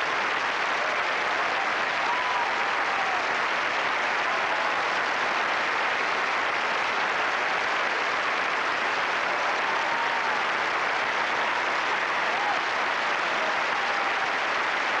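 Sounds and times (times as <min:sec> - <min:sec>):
audience applauding: 0:00.0 - 0:15.0.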